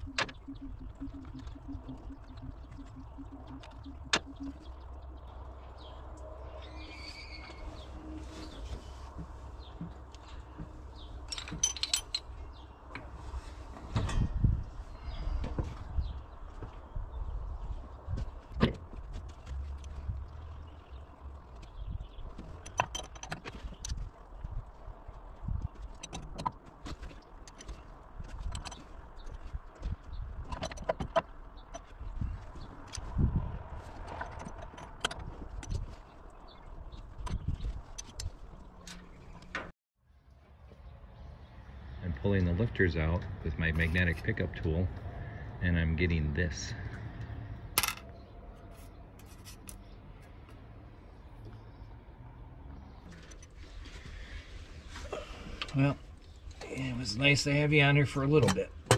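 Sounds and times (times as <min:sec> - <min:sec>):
metallic clinks and knocks: 0:11.1 - 0:12.4, 0:47.8 - 0:48.2.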